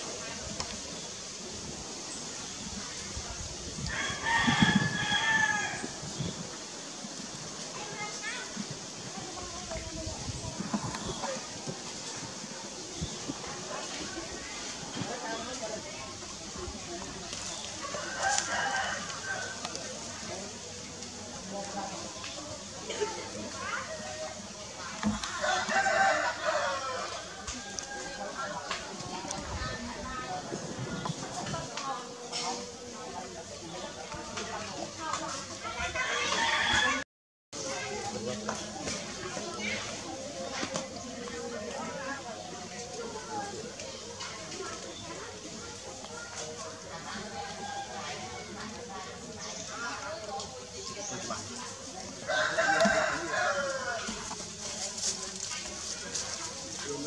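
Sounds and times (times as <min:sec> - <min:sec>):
rooster crowing: 0:03.9 - 0:05.9, 0:17.9 - 0:19.8, 0:25.4 - 0:28.2, 0:52.2 - 0:54.2.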